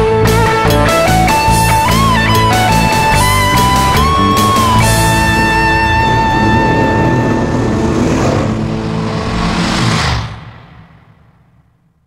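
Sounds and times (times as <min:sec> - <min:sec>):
rock band playing: 0:00.0 - 0:08.4.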